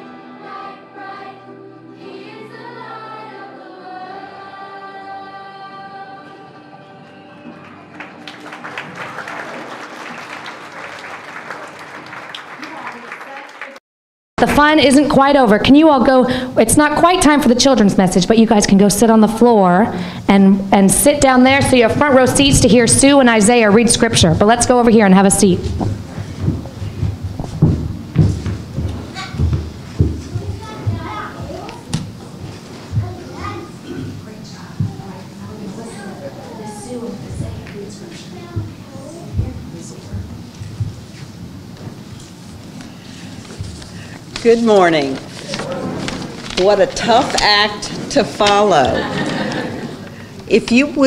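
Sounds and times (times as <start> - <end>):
children singing: 0.0 - 7.8
congregation applauding: 7.5 - 13.8
children's footsteps: 21.2 - 50.8.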